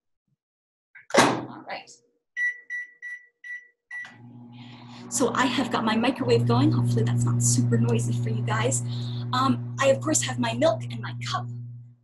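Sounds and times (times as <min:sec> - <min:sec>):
microwave keypad beeping: 0:02.4 - 0:04.2.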